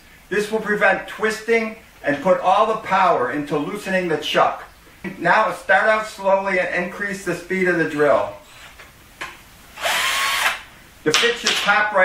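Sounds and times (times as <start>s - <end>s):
cordless drill motor whine: 9.8s - 10.7s.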